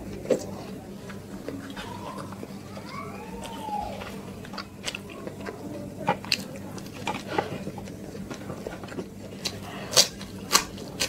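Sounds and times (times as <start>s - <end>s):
fingers squishing rice: 0.0s - 11.0s
steady low hum: 0.0s - 11.0s.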